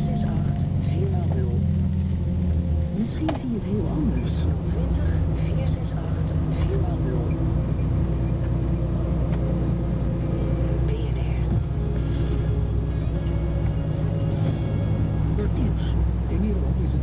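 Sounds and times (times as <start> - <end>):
diesel engine drone in cab: 0.0 - 17.0
faint radio talk: 15.3 - 17.0.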